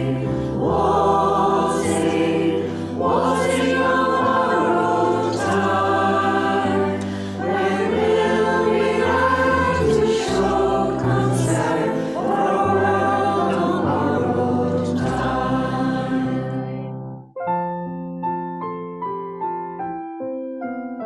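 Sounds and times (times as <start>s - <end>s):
choir singing sustained chords: 0.0s - 17.2s.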